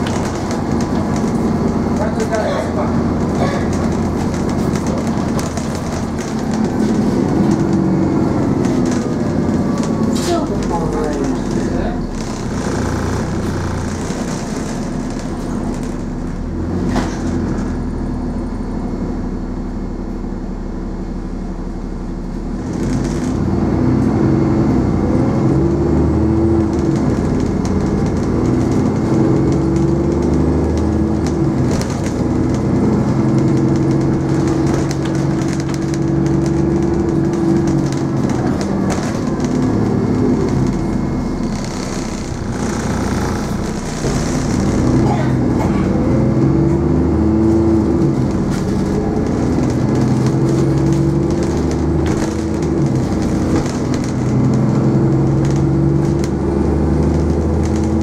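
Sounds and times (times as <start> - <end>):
bus engine running: 0.0 - 58.0.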